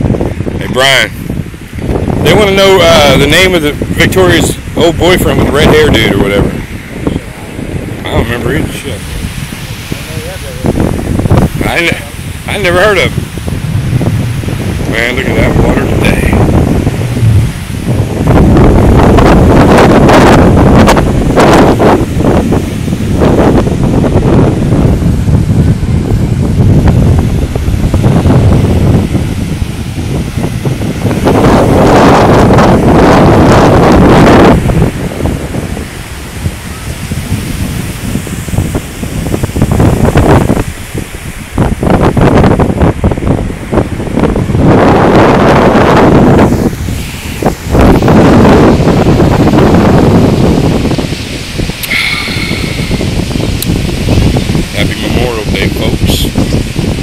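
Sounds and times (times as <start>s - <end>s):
ocean surf breaking: 0.0s - 57.0s
wind on microphone: 0.0s - 57.0s.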